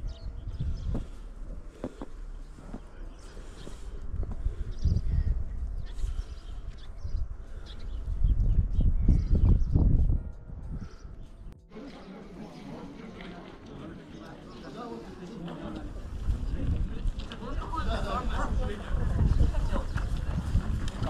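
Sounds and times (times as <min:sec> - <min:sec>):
wind buffeting microphone: 0:00.0 - 0:01.7, 0:03.6 - 0:11.5, 0:15.8 - 0:21.0
footsteps crunching on snow: 0:00.6 - 0:04.6.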